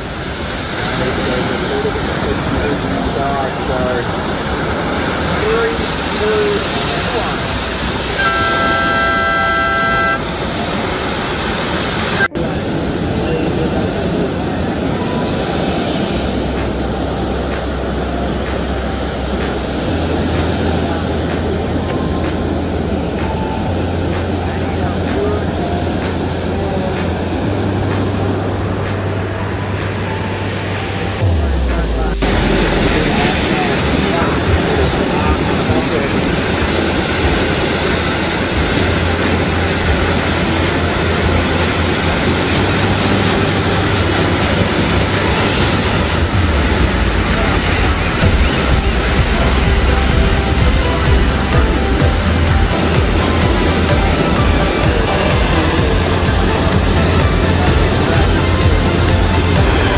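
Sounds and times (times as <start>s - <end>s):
ocean surf breaking: 0.0s - 59.9s
wind rumbling on microphone: 0.0s - 59.9s
slow bass line: 16.0s - 59.9s.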